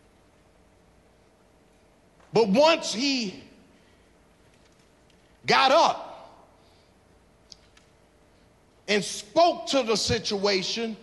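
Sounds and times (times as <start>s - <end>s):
man talking: 2.3s - 3.6s, 5.4s - 6.4s, 8.9s - 11.0s.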